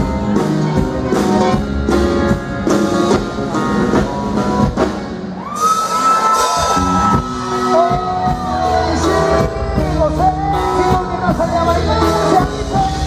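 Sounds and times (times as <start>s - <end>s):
live band playing a song: 0.0s - 13.0s.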